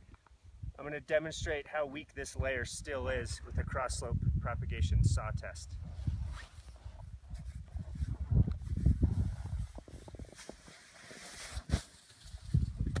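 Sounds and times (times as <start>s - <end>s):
saw scraping through snow: 5.8s - 12.7s.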